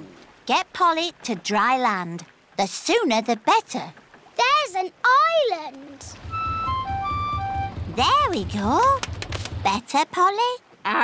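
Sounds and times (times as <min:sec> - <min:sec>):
small boat engine chugging: 0:06.0 - 0:10.0
high melody of single notes: 0:06.2 - 0:08.0.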